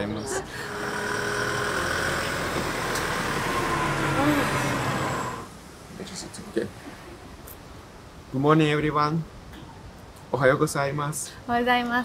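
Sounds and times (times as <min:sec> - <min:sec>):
vehicle engine running: 0:00.5 - 0:05.5.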